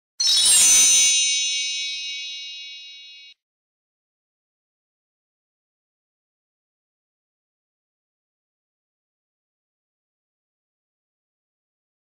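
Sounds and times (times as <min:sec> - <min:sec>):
bright metallic ding: 0:00.2 - 0:03.4.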